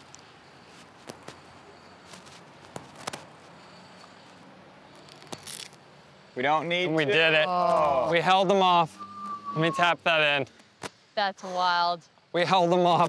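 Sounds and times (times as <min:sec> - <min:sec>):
quiet outdoor ambience: 0:00.0 - 0:13.0.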